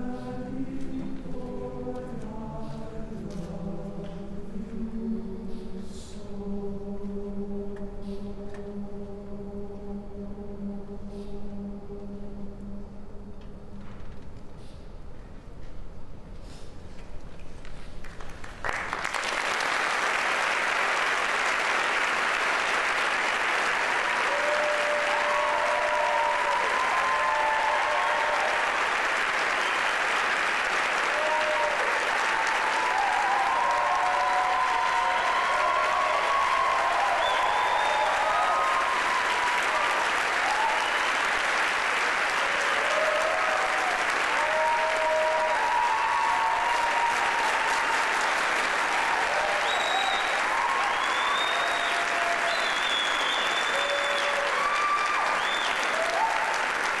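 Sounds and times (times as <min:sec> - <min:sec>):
audience applause: 0:18.0 - 0:57.0
people cheering: 0:18.6 - 0:57.0.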